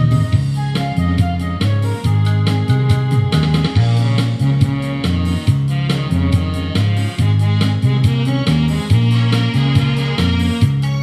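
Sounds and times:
instrumental trot music over speakers: 0:00.0 - 0:11.0.

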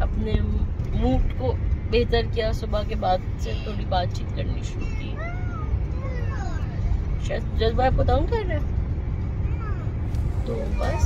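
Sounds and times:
car driving rumble: 0:00.0 - 0:11.0.

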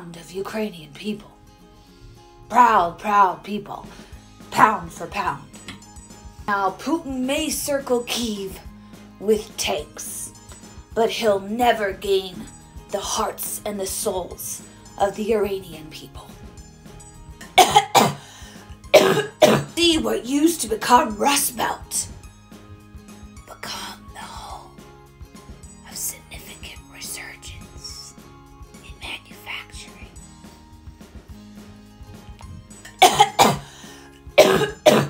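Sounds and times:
soft background music: 0:00.0 - 0:35.0
woman coughing: 0:17.4 - 0:18.2, 0:18.9 - 0:19.8, 0:32.9 - 0:33.8, 0:34.4 - 0:35.0.

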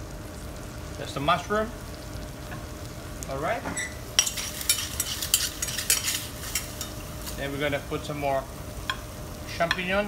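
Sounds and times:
mushrooms frying in a pan: 0:00.0 - 0:10.0.

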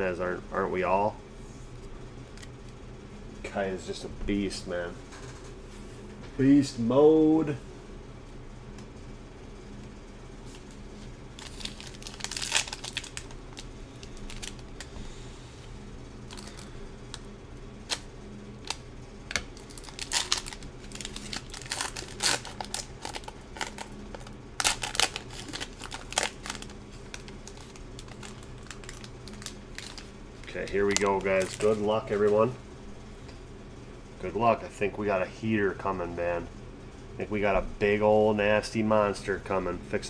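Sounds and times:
low steady hum: 0:00.0 - 0:40.0
foil wrappers crinkling: 0:10.5 - 0:14.9, 0:16.3 - 0:17.2, 0:17.8 - 0:32.5
cards being handled: 0:18.6 - 0:32.4.

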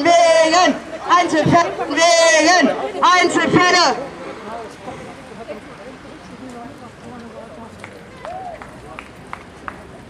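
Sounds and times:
crowd chatter: 0:00.0 - 0:10.0
footsteps on paved path: 0:04.5 - 0:10.0.

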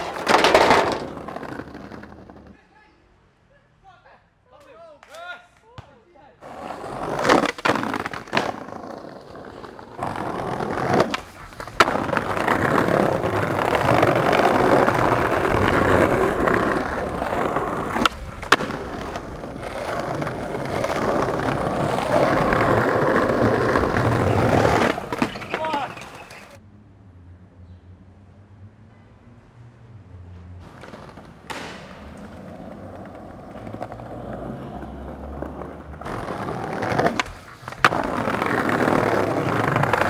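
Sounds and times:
skateboard popping and landing: 0:00.0 - 0:02.6, 0:06.4 - 0:26.6, 0:30.6 - 0:40.0
skateboard wheels rolling on pavement: 0:00.0 - 0:02.6, 0:06.4 - 0:26.6, 0:30.1 - 0:40.0.

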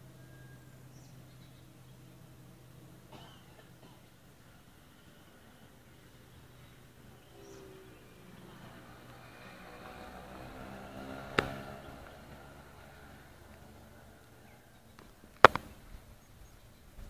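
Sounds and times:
vehicle engine passing by: 0:04.7 - 0:14.9.

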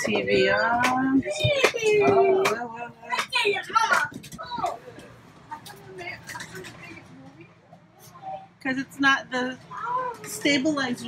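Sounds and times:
low indistinct voices: 0:00.0 - 0:11.0.

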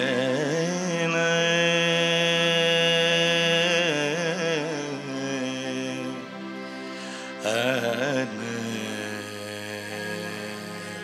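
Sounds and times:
man singing a wavering note: 0:00.0 - 0:06.4, 0:07.4 - 0:11.0
instrumental drone: 0:00.0 - 0:11.0.

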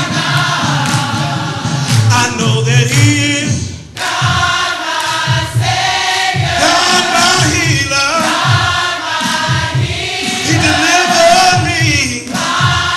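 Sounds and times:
gospel choir singing: 0:00.0 - 0:12.9.

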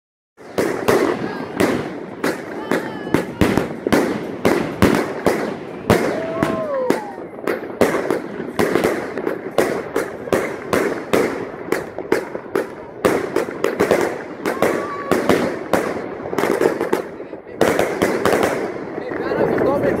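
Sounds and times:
fireworks banging: 0:00.4 - 0:20.0
fireworks crackling: 0:00.4 - 0:20.0.

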